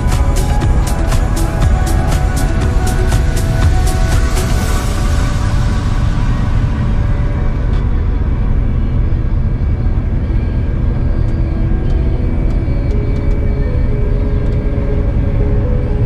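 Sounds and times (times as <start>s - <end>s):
combine harvester engine rumble: 0.0s - 16.0s.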